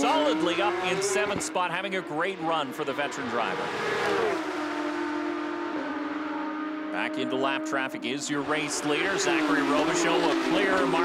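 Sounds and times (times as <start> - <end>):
race car engines passing by: 0.0 - 11.0.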